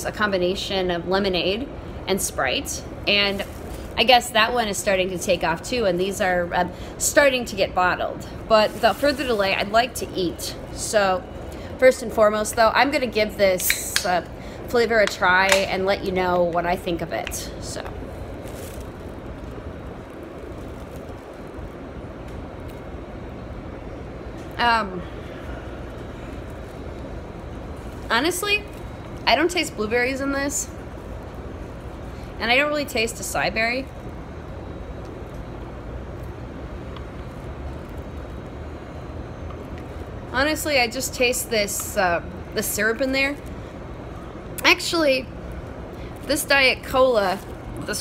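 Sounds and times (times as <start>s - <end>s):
rail car rumble and hiss: 0.0s - 48.0s.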